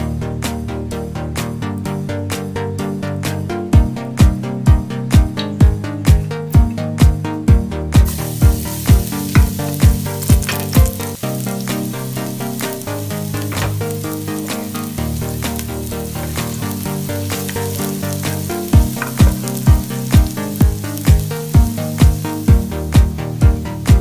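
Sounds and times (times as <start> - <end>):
dance music with kick drum: 3.8 - 11.2, 14.6 - 24.0
garlic sizzling in hot oil: 8.0 - 24.0.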